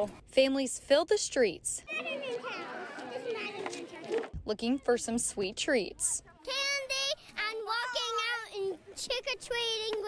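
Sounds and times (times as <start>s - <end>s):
children talking and calling out: 1.8s - 5.2s, 5.8s - 10.0s.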